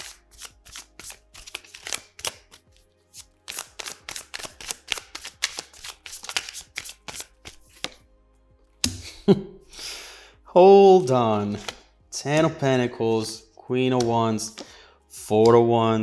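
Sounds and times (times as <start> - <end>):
cards being shuffled: 0.0 - 8.0, 11.4 - 12.6, 14.0 - 14.7.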